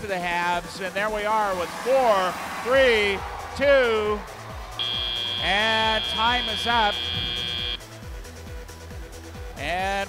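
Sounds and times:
electronic music with drum beat: 0:01.2 - 0:07.8
buzzer steady high tone: 0:04.8 - 0:07.8.

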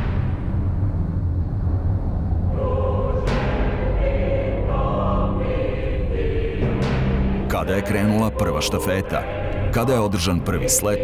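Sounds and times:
choir singing held chords: 0:02.4 - 0:11.0.

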